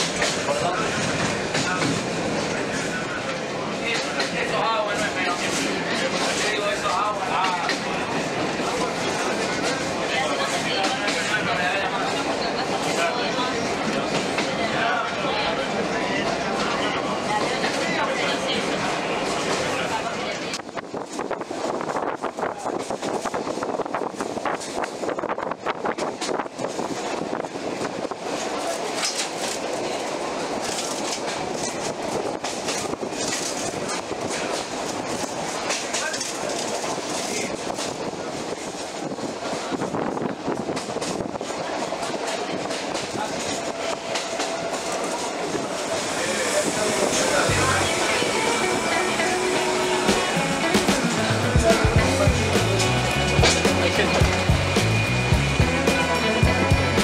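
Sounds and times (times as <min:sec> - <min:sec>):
rail clicks: 0:00.0 - 0:57.0
train wheels rushing on rail: 0:00.0 - 0:57.0
music with steady beat: 0:49.2 - 0:57.0.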